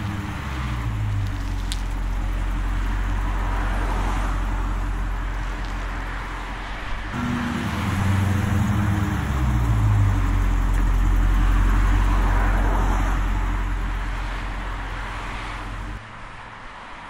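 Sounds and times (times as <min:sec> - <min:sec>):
car engine idling: 0:00.0 - 0:16.0.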